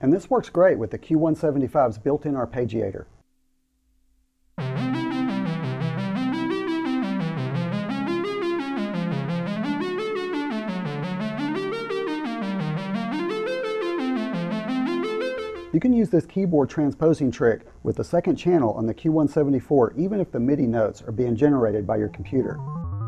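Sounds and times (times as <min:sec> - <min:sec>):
synthesizer arpeggio: 0:04.6 - 0:15.8, 0:22.4 - 0:23.0.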